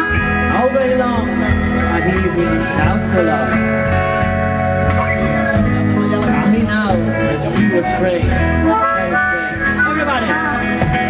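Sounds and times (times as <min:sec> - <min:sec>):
live band playing: 0:00.0 - 0:11.0
harmonica solo with note bends: 0:07.0 - 0:11.0.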